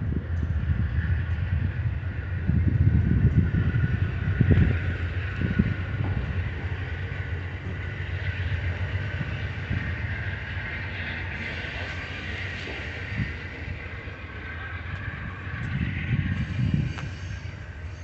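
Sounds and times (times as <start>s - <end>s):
train wheels rumbling on rails: 0.0s - 18.0s
thin high whine: 4.4s - 18.0s.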